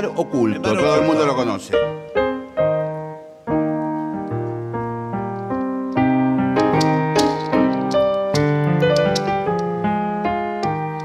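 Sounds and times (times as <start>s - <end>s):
piano playing folk music: 0.0s - 11.0s.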